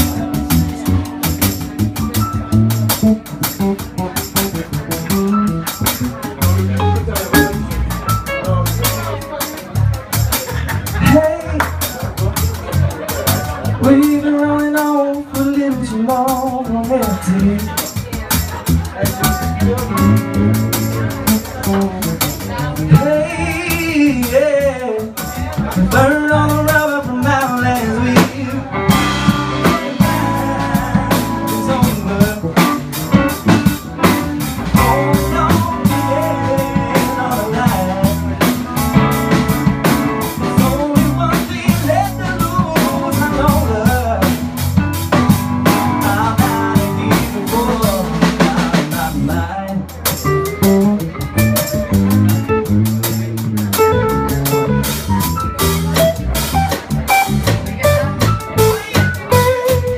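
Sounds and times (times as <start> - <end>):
bass: 0.0 - 59.9
drum kit: 0.0 - 59.9
electric guitar: 0.0 - 59.9
keyboard: 0.0 - 59.9.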